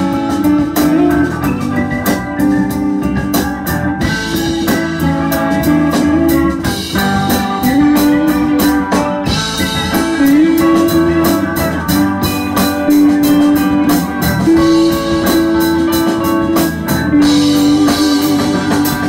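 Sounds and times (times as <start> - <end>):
drums keeping steady beat: 0.0 - 19.0
electric guitar: 0.0 - 19.0
keyboard: 0.0 - 19.0.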